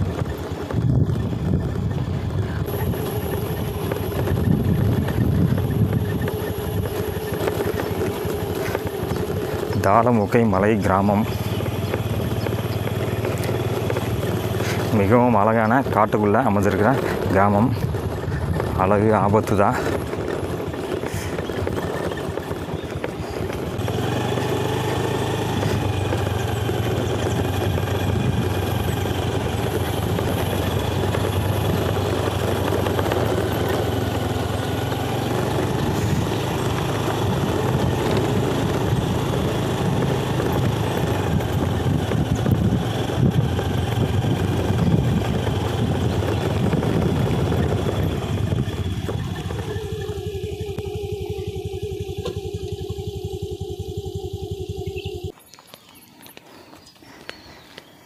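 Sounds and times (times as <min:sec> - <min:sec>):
rough rushing noise: 0:00.0 - 0:55.3
motorcycle engine running: 0:00.0 - 0:56.0.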